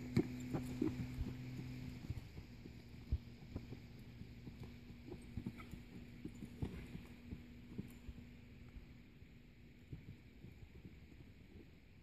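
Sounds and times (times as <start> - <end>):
hoofbeats on soft dirt: 0.0 - 12.0
steady low hum: 0.0 - 12.0.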